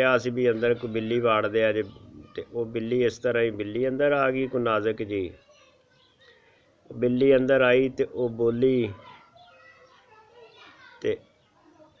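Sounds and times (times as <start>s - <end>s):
faint children's voices: 0.0s - 12.0s.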